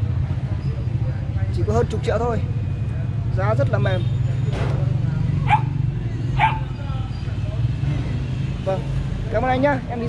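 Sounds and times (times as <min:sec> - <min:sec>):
dog yipping: 0:05.4 - 0:05.8, 0:06.4 - 0:06.9.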